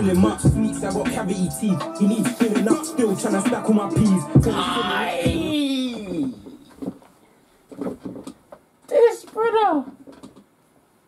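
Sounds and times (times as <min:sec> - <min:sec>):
rustles and knocks in chair: 0:06.5 - 0:08.7.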